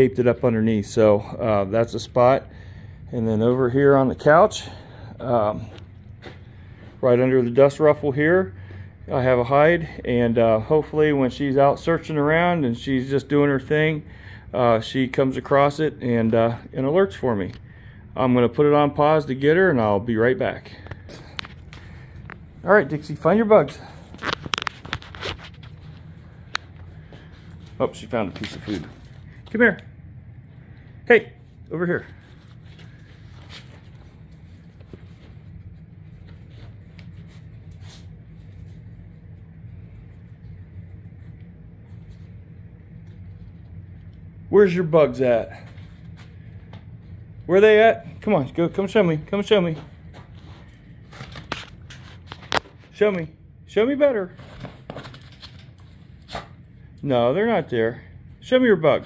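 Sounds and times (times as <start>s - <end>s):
low steady hum: 0.0s - 59.0s.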